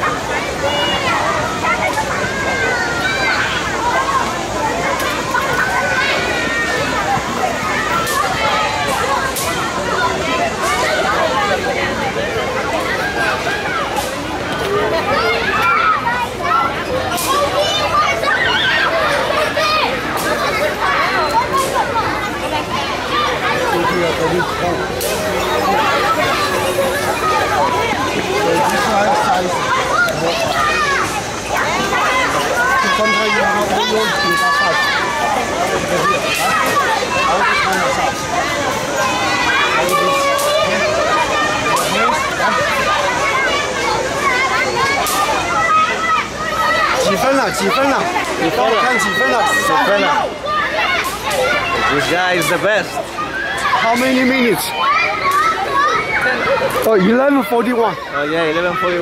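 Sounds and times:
adult voices: 0:00.0 - 0:59.0
children calling and chattering: 0:00.0 - 0:59.0.

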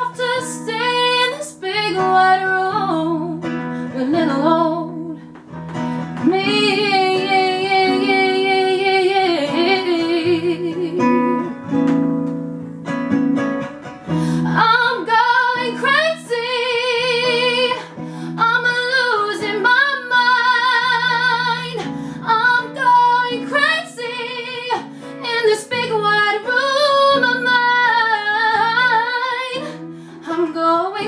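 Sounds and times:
woman singing with vibrato: 0:00.0 - 0:05.4, 0:06.2 - 0:11.6, 0:14.4 - 0:31.0
guitar accompaniment: 0:00.0 - 0:31.0.

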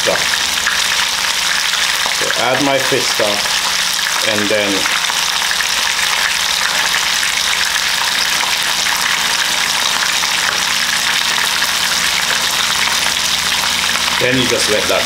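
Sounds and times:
food sizzling in pans: 0:00.0 - 0:15.0.

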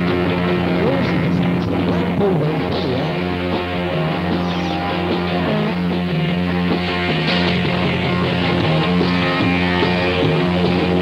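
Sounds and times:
lo-fi psychedelic rock: 0:00.0 - 0:11.0.

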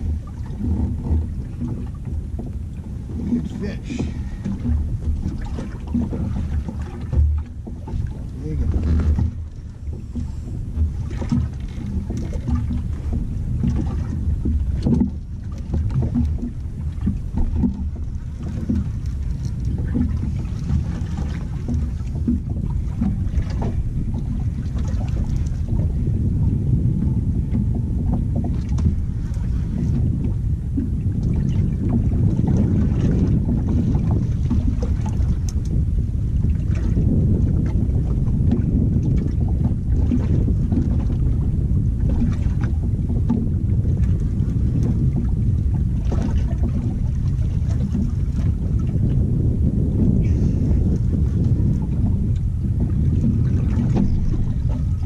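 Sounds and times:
water moving around boat: 0:00.0 - 0:55.0
wind on microphone: 0:00.0 - 0:55.0.

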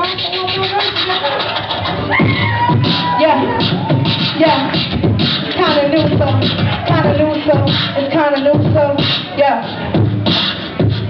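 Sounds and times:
beatboxing clicks: 0:00.0 - 0:02.0, 0:02.8 - 0:11.0
beatboxing hum: 0:00.0 - 0:11.0.

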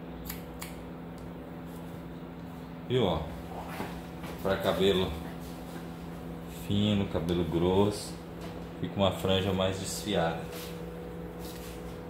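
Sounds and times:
scissors snipping hair: 0:00.2 - 0:01.3.

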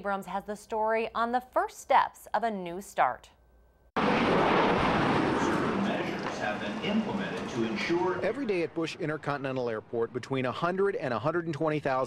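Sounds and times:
jet airliner flying overhead: 0:04.0 - 0:10.3.

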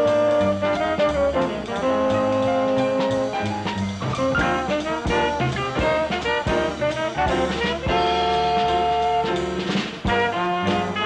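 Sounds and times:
live jazz quintet playing: 0:00.0 - 0:11.0.

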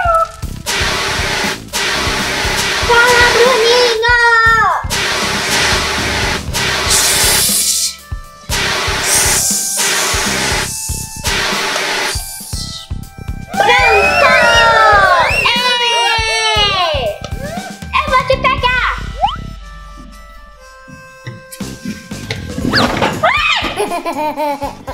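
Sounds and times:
background music: 0:00.0 - 0:24.9
extinguisher spray hiss: 0:05.1 - 0:08.0, 0:08.8 - 0:12.7.

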